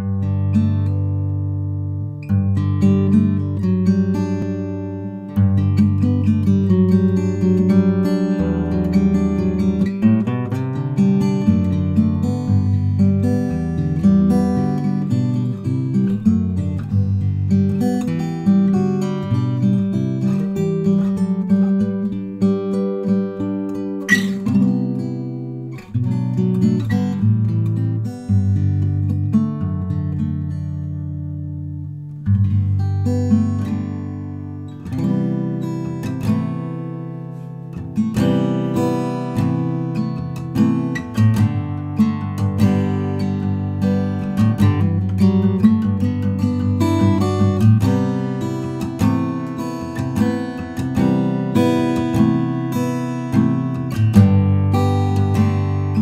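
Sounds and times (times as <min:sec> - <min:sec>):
fingerstyle acoustic guitar: 0:00.0 - 0:56.0.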